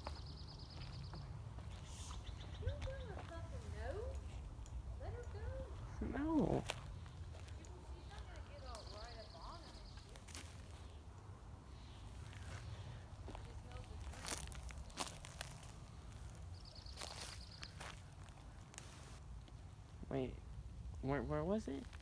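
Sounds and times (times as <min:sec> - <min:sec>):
footsteps on forest floor: 0:00.0 - 0:04.2, 0:05.4 - 0:11.1, 0:12.0 - 0:19.7.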